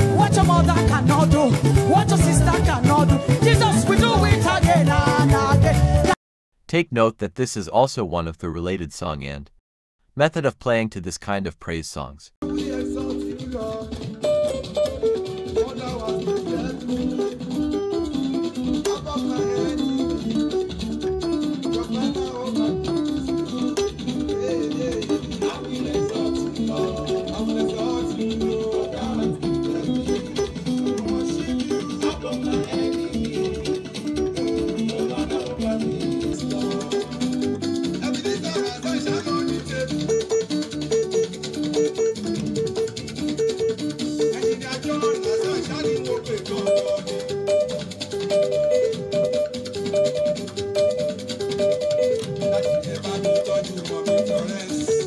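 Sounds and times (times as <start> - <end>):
steady beat: 0.0 - 6.1, 12.4 - 55.0
keyboard playing fast pattern: 0.0 - 6.2, 12.4 - 55.0.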